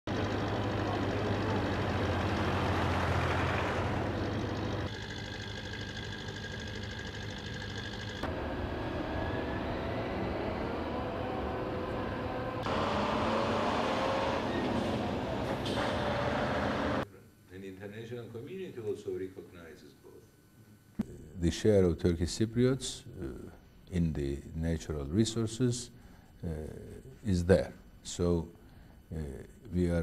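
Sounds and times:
mechanical rumble: 0.1s - 17.0s.

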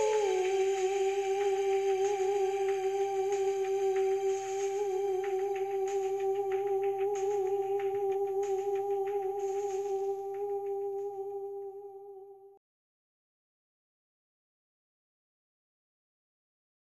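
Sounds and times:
long humming note: 0.0s - 12.6s.

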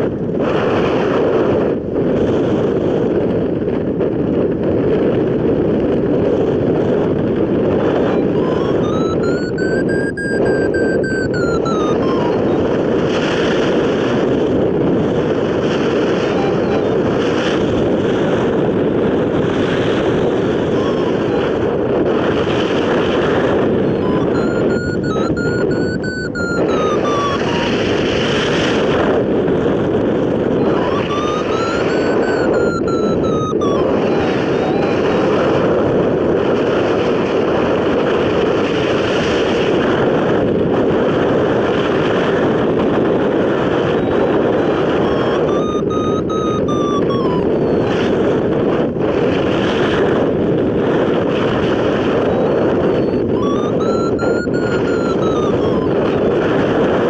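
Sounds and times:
wind rushing over microphone: 0.0s - 57.0s
variometer beeping rising pitch: 7.9s - 12.8s, 16.0s - 17.2s, 20.6s - 21.6s, 23.6s - 28.0s, 30.6s - 35.4s, 43.9s - 48.1s, 52.3s - 56.2s.

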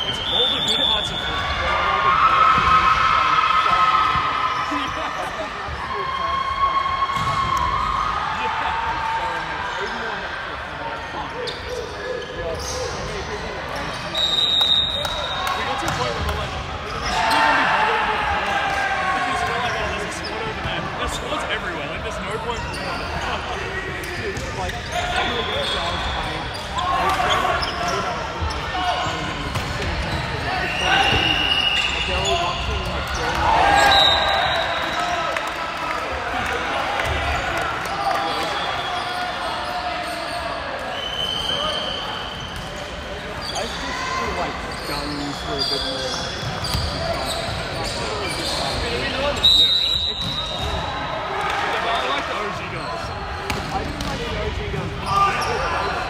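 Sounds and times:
players shouting and calling: 0.0s - 56.0s
sneakers squeaking on wooden court: 11.4s - 17.5s, 22.5s - 34.0s, 41.2s - 49.4s, 52.8s - 55.7s.

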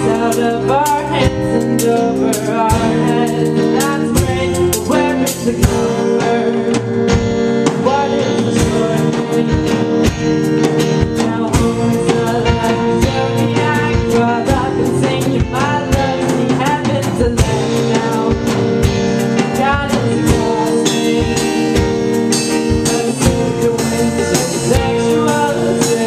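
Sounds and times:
bass guitar: 0.0s - 26.0s
drum kit beat: 0.0s - 26.0s
electric guitar: 0.0s - 26.0s
person singing through pa: 0.0s - 26.0s.

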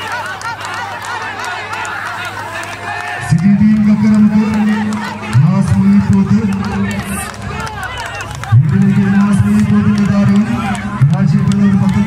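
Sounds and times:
crowd shouting: 0.0s - 12.0s
man calling over loudspeaker: 2.9s - 12.0s.

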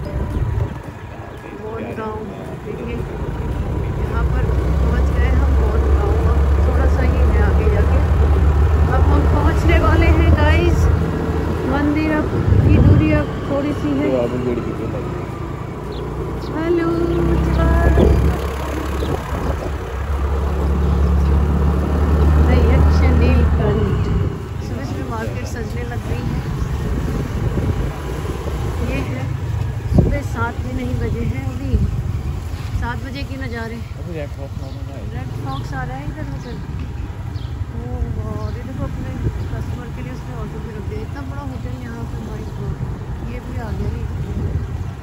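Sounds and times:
wind buffeting microphone: 0.0s - 14.0s, 15.5s - 34.0s, 35.0s - 45.0s
scooter engine running: 0.0s - 33.5s.

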